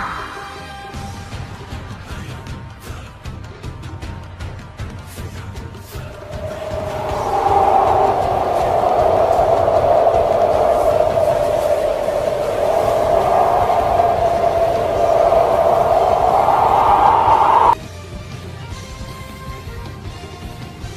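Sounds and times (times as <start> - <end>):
whirling wind whistling: 6.0 - 17.8.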